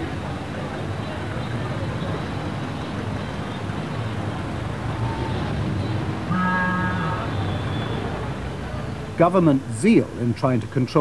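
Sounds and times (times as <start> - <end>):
traffic rumble: 0.0 - 11.0
short held tone: 6.3 - 8.0.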